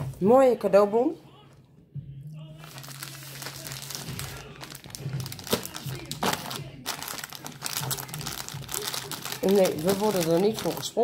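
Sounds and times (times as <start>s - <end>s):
plastic bag crinkling: 2.6s - 11.0s.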